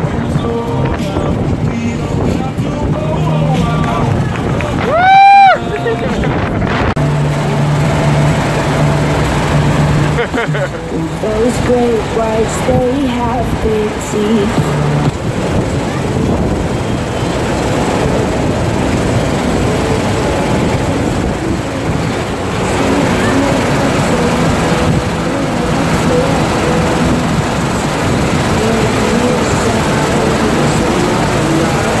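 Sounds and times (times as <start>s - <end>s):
rush of pumped water: 0.0s - 32.0s.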